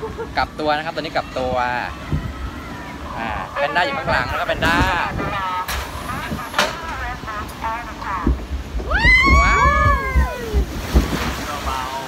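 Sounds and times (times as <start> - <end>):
rushing water: 0.0 - 12.0
wind buffeting microphone: 0.0 - 12.0.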